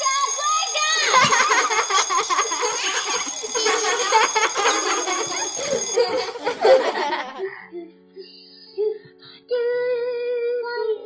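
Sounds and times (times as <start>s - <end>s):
alarm bell ringing rapidly: 0.0s - 6.9s.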